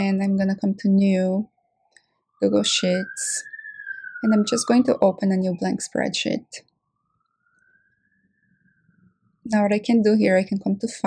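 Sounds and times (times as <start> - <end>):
faint rising and falling tone: 2.3 - 9.4.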